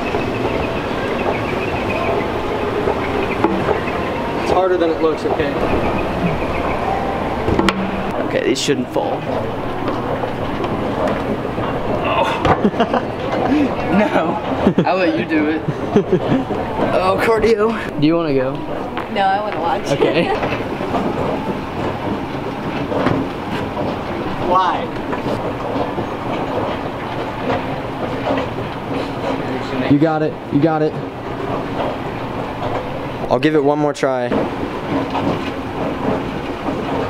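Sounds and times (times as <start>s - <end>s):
knock on metal escalator steps: 0.0s - 13.0s, 18.6s - 28.8s
escalator running: 0.0s - 37.0s
mall hubbub: 0.0s - 37.0s.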